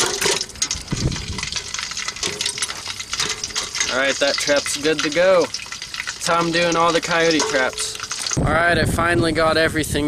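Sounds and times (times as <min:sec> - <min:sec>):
chain clinking against metal pot: 0:00.0 - 0:08.5
liquid sloshing: 0:00.0 - 0:08.5
wood fire crackling: 0:00.0 - 0:09.4.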